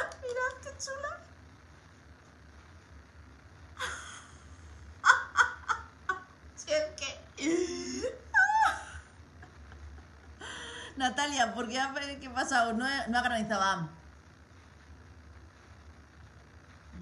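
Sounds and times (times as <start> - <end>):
woman laughing: 3.8 - 4.4, 5.0 - 6.4, 7.4 - 10.9.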